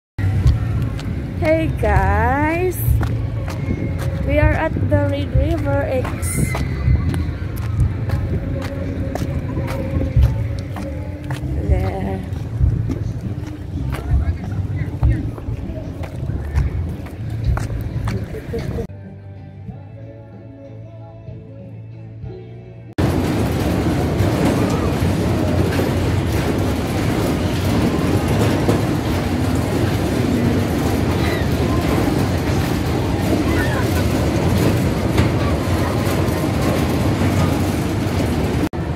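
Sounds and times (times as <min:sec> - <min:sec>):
fairground ride mechanical rumble: 0:00.2 - 0:18.9, 0:23.0 - 0:38.9
ride cars rolling: 0:00.2 - 0:18.9, 0:23.0 - 0:38.9
faint music: 0:00.2 - 0:38.9.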